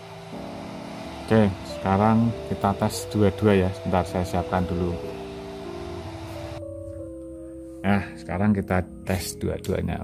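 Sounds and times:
soft held chord tones: 0:00.0 - 0:10.0.

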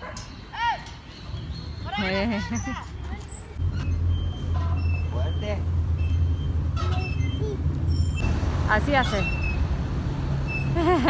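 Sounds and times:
road traffic engine rumble: 0:00.0 - 0:11.0.

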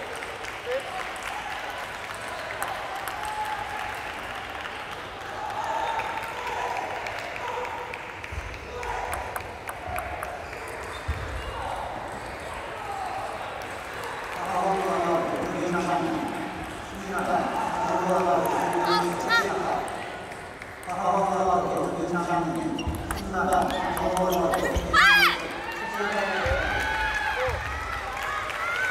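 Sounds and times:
spectators clapping: 0:00.0 - 0:28.9
spectators' indistinct voices: 0:00.0 - 0:28.9.

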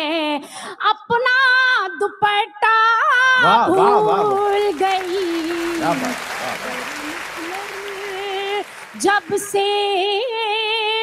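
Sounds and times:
audience clapping: 0:03.4 - 0:10.2.

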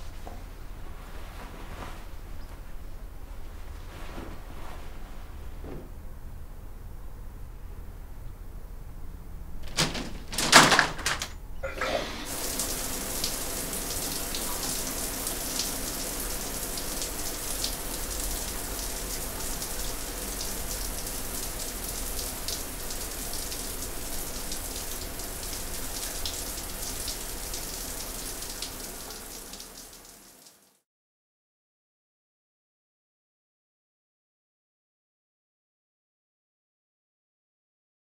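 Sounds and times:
steady rain: 0:09.7 - 0:30.8.

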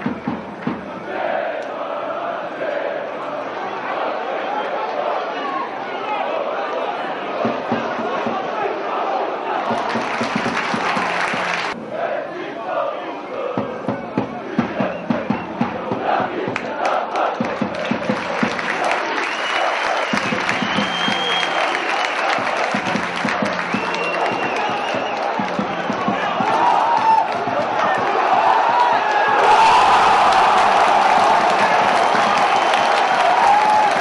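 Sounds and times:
football crowd chanting and shouting: 0:00.0 - 0:34.0
sharp rhythmic beats: 0:09.7 - 0:12.1, 0:20.1 - 0:29.0.

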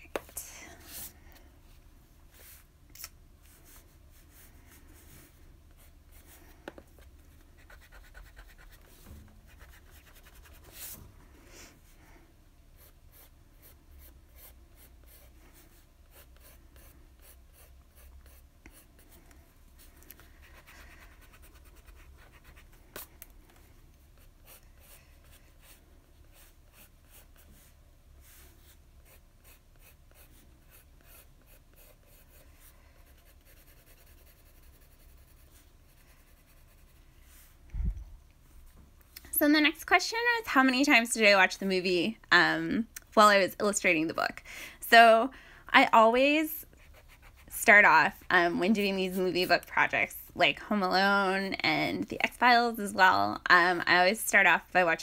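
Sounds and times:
pencil scratching on paper: 0:03.5 - 0:11.0, 0:12.8 - 0:19.2, 0:20.4 - 0:37.5, 0:46.7 - 0:48.0.

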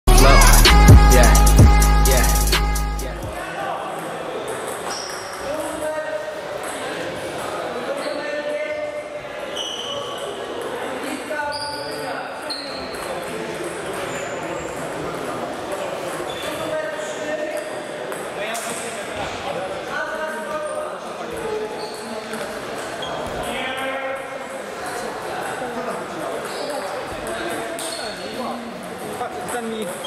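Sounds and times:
background voices: 0:00.1 - 0:03.4.

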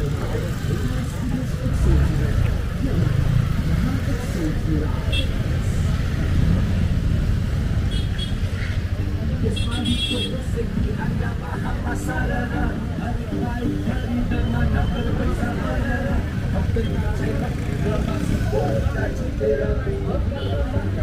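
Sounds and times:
crowd voices: 0:00.0 - 0:21.0
motorcycle engines passing: 0:00.0 - 0:21.0.

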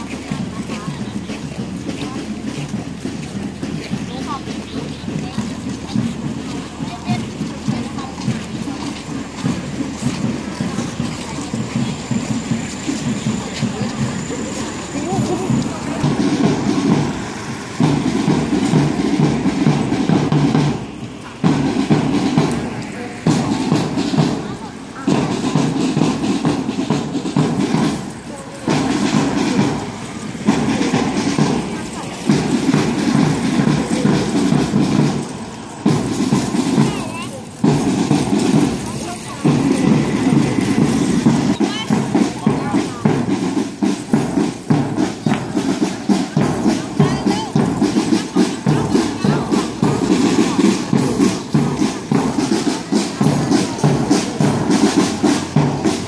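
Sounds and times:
music: 0:00.2 - 0:56.0.

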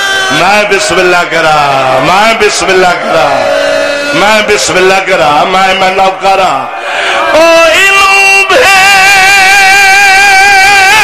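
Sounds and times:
man chanting a long high note: 0:00.0 - 0:11.0.

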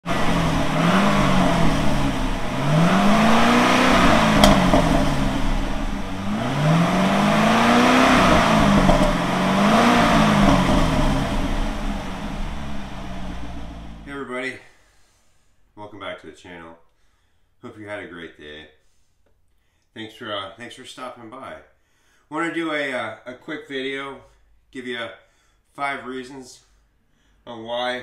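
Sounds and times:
car engine revving: 0:00.0 - 0:14.1
exhaust pops: 0:00.0 - 0:14.1.

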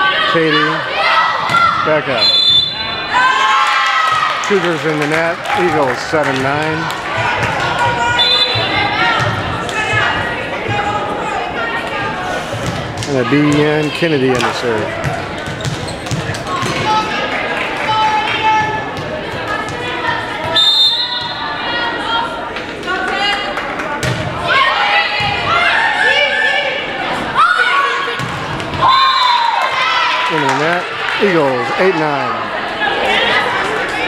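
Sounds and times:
spectators shouting: 0:00.0 - 0:06.0, 0:06.7 - 0:12.5, 0:24.4 - 0:34.0
players calling: 0:00.0 - 0:34.0
volleyball strikes and thuds: 0:28.2 - 0:28.9.

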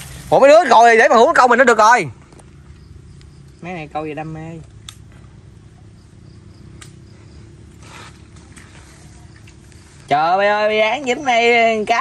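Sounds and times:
faint insect chirping: 0:00.0 - 0:12.0.

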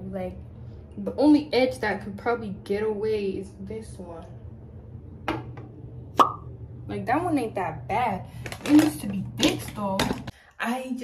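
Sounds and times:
steady low hum: 0:00.0 - 0:10.6.

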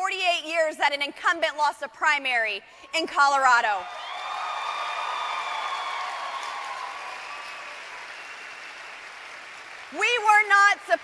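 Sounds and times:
audience applauding and cheering: 0:03.8 - 0:11.0.

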